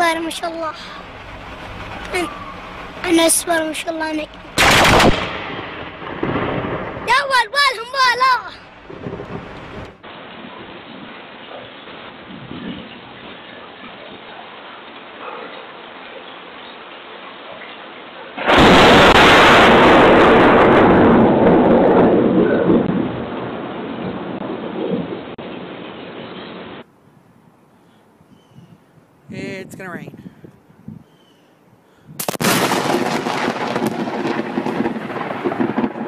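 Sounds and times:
loud thunderclap rumbling: 0.0 - 11.2, 18.4 - 25.8, 32.2 - 36.0
heavy rain: 0.0 - 26.9, 32.2 - 36.0.

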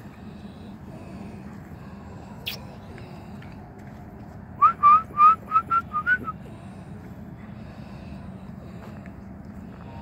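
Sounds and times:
person whistling short rising notes: 4.6 - 6.4.

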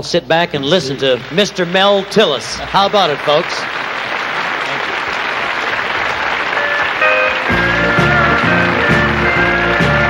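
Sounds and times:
studio audience applauding: 0.6 - 10.0
country band playing: 6.5 - 10.0.

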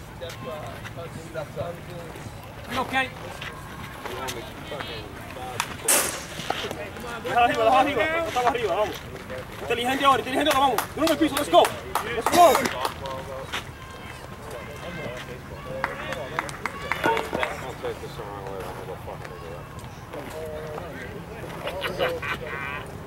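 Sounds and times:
scattered calls and chatter: 0.0 - 23.0
people shouting: 13.7 - 17.4.

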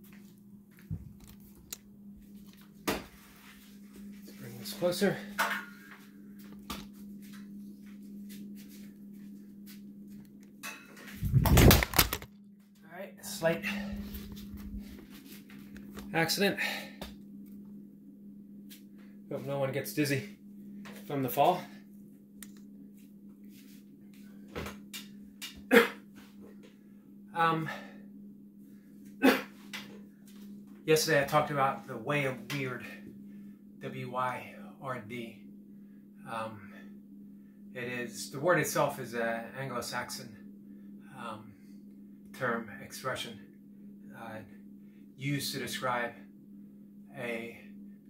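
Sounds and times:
steady low hum: 0.0 - 48.0
phone falling with rumbling knock: 11.2 - 12.3.

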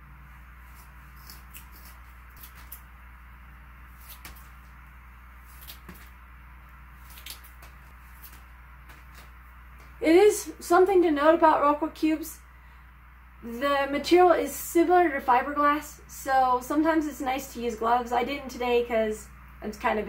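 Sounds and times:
faint low room hum: 0.0 - 20.0
scissors snipping: 0.7 - 2.9.

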